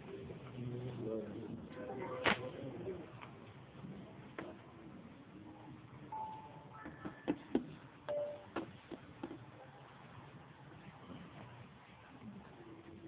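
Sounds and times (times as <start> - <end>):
faint held tones: 6.1 - 7.2, 8.1 - 8.5.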